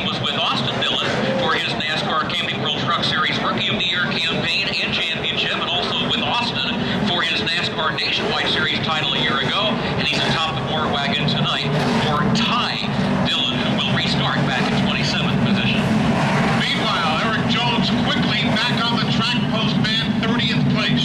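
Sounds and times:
crowd voices chattering: 0:00.0 - 0:21.0
race truck engines running: 0:00.0 - 0:21.0.

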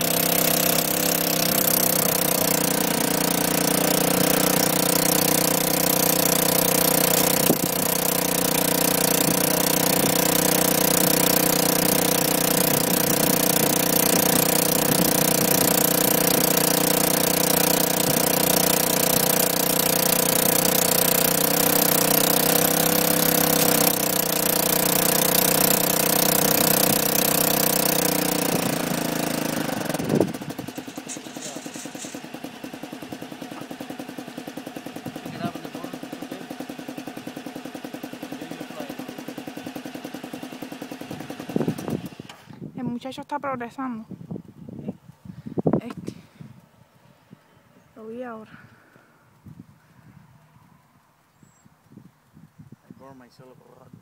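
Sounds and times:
small engine running: 0:00.0 - 0:43.2.

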